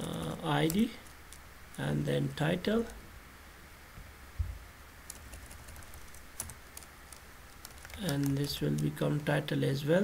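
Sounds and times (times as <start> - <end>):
computer keyboard typing: 5.0 - 9.3.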